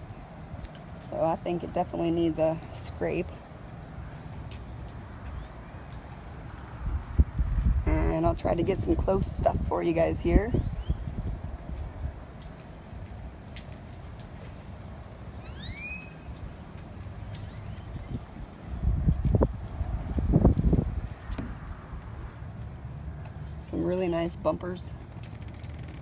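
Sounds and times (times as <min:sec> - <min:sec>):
bird call: 0:15.4 - 0:16.4.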